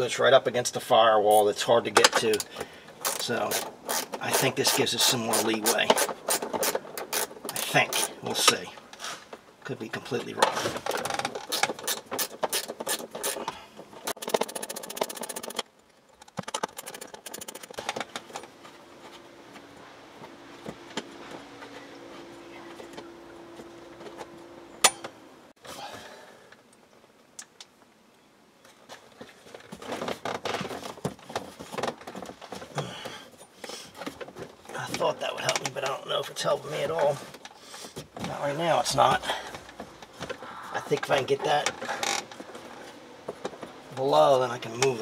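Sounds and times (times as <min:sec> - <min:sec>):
handling of tools and plastic trim: 0:01.8 - 0:19.2
hand ratchet clicking: 0:03.0 - 0:08.1
clattering and rustling: 0:10.2 - 0:25.8, 0:28.6 - 0:35.8, 0:36.7 - 0:44.0.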